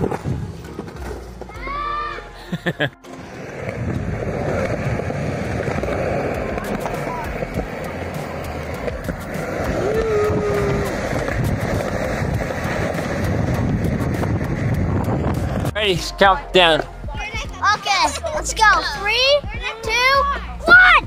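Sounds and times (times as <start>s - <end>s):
skateboard wheels rolling on concrete: 0.0s - 21.0s.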